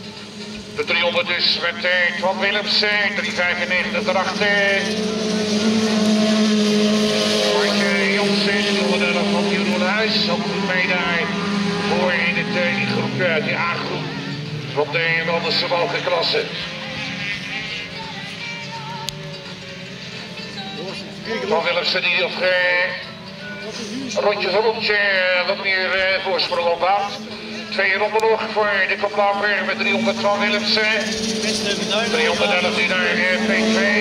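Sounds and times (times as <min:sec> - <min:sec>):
music over loudspeakers: 0:00.0 - 0:06.0, 0:07.2 - 0:34.0
race car engines revving: 0:00.0 - 0:34.0.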